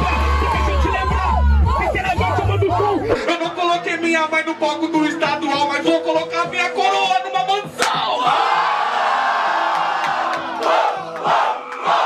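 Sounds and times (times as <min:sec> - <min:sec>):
crowd cheering and shouting: 0:00.0 - 0:03.6, 0:07.8 - 0:12.0
hip-hop beat: 0:00.0 - 0:08.8.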